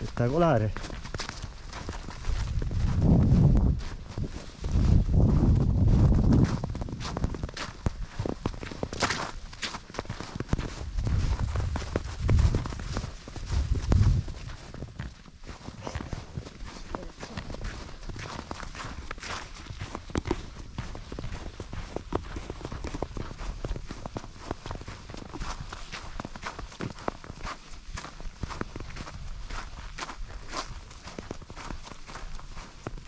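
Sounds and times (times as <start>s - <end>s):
footsteps crunching through snow: 0.0s - 33.0s
wind buffeting microphone: 1.8s - 9.2s, 10.2s - 16.8s.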